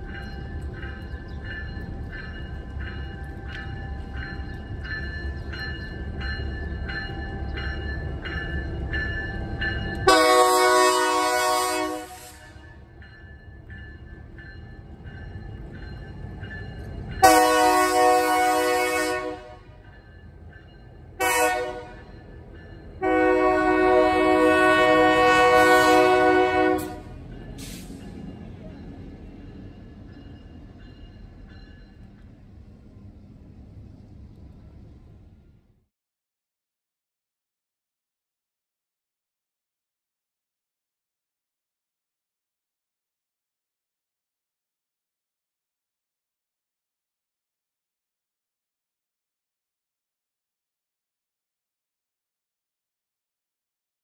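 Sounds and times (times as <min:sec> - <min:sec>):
freight train rumbling: 0:00.0 - 0:35.9
locomotive horn blast: 0:10.0 - 0:12.7, 0:17.2 - 0:19.8, 0:21.2 - 0:22.1, 0:23.0 - 0:27.8.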